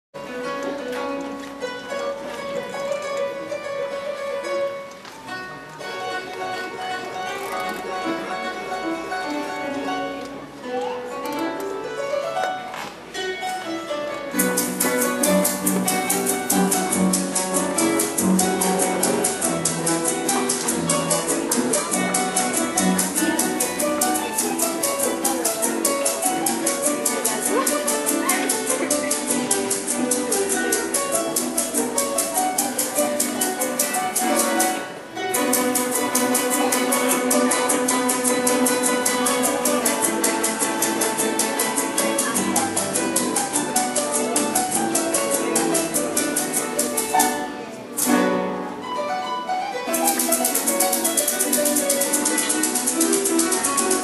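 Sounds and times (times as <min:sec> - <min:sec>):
harp playing fast melody: 0:00.2 - 0:54.0
strummed cuatro: 0:00.2 - 0:54.0
maracas shaking: 0:14.3 - 0:48.5, 0:49.8 - 0:54.0.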